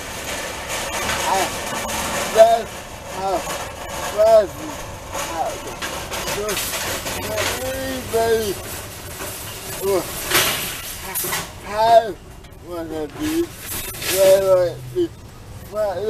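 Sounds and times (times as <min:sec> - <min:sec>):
man speaking: 0:01.2 - 0:08.7, 0:09.8 - 0:10.2, 0:11.6 - 0:16.0.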